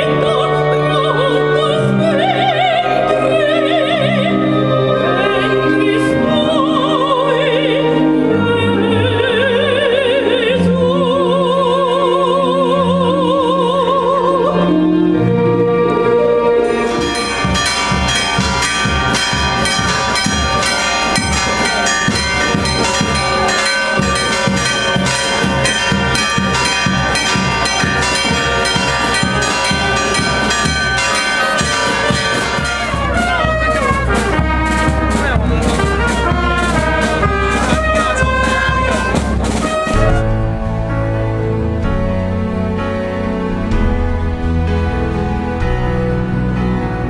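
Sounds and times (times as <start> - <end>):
brass band music: 14.6 - 47.0.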